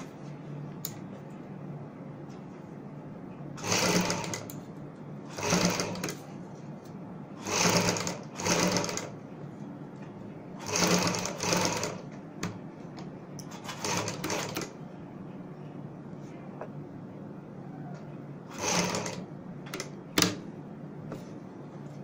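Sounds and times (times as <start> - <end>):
sewing machine stitching: 3.6 - 4.5, 5.3 - 6.2, 7.4 - 9.2, 10.6 - 12.0, 13.5 - 14.8, 18.5 - 20.4.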